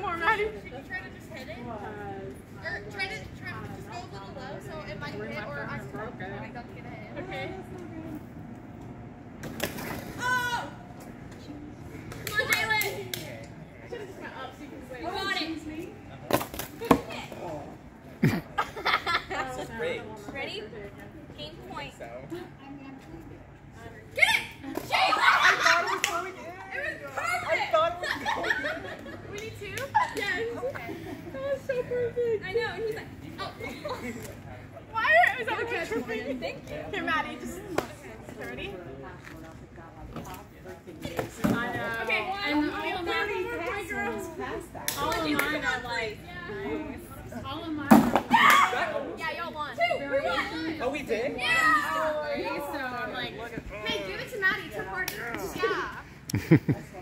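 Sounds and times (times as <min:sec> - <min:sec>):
girls talking indistinctly: 0:00.0 - 0:09.1, 0:10.0 - 0:56.3
young people calling out: 0:10.1 - 0:10.9, 0:24.1 - 0:26.1, 0:48.3 - 0:52.8.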